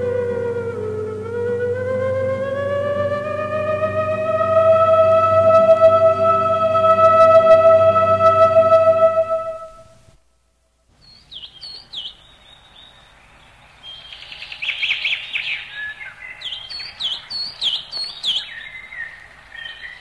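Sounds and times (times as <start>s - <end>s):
birds chirping: 0.0s - 9.8s, 11.0s - 20.0s
thin whistled bird notes: 11.0s - 20.0s.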